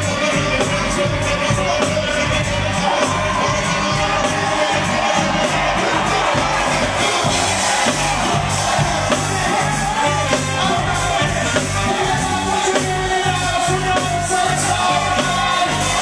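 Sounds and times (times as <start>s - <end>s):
crowd noise: 0.0s - 16.0s
live funk band with vocals: 0.0s - 16.0s.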